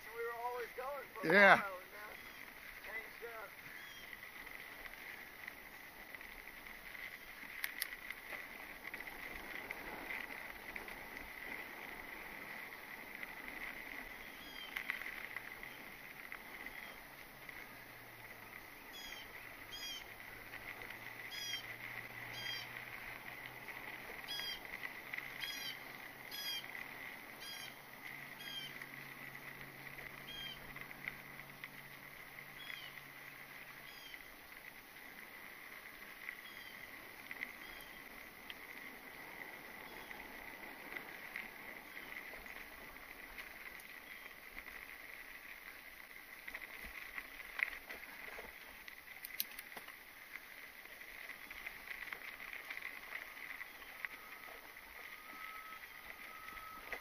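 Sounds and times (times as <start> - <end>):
bike tyres rolling on trail: 0.0 - 57.0
bird chirping: 2.0 - 3.0, 3.6 - 4.2, 18.9 - 20.1.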